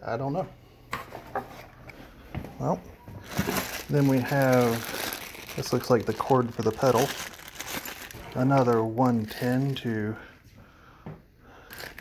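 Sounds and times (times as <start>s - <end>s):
items knocking and rustling in a box: 3.2s - 5.6s.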